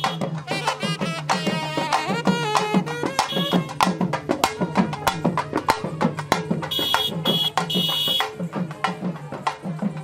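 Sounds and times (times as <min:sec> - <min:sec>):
processional drumming: 0:00.0 - 0:10.0.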